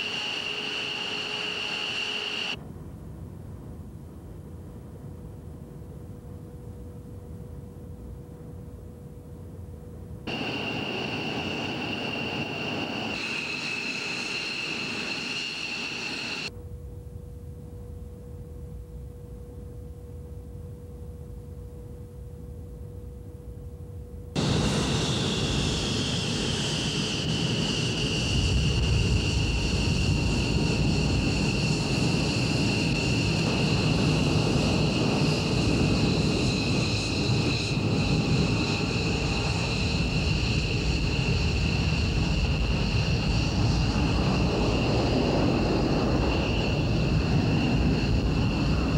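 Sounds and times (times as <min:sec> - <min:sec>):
jet engines whining and rumbling: 0:00.0 - 0:48.9.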